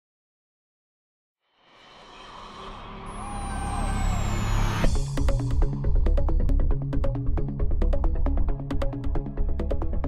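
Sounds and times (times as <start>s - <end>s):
high whistle gliding down: 2.6s - 4.9s.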